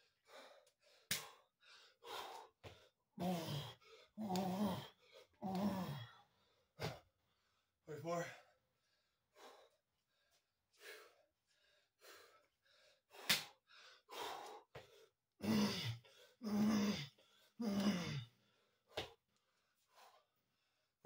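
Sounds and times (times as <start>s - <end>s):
man breathing hard and gasping: 0.0s - 7.7s, 8.5s - 20.8s
slap on a mat: 13.2s - 13.6s.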